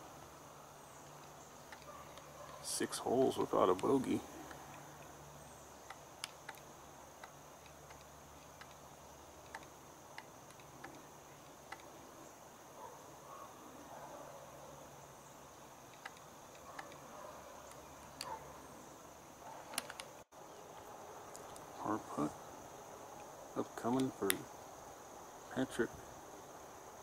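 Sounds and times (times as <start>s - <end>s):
faint sharp clicks: 5.8s - 8.8s, 9.4s - 11.9s, 15.9s - 17.0s, 23.2s - 24.4s.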